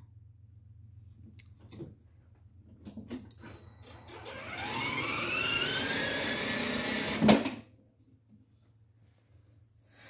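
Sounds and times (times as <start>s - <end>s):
electric motor whine: 3.9s - 7.3s.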